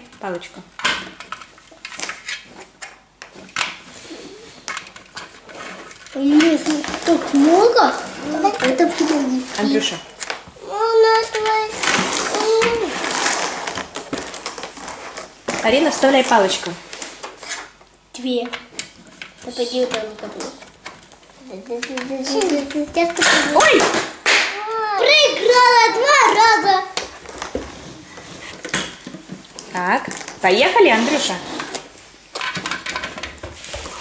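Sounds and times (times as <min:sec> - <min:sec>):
child's voice: 0:06.2 - 0:09.8, 0:10.6 - 0:13.0, 0:19.4 - 0:20.6, 0:21.4 - 0:23.7, 0:24.5 - 0:27.0.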